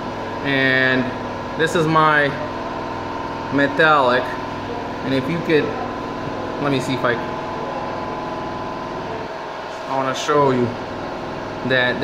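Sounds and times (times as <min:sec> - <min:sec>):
ventilation fan humming: 0:00.0 - 0:12.0.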